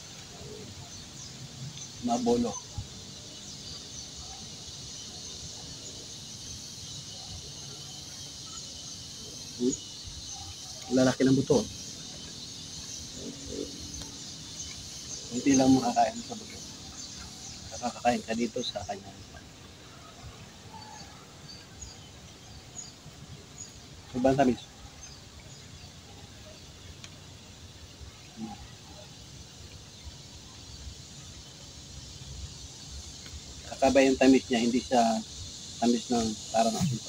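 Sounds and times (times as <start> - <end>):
high even hiss: 0.0 - 37.0.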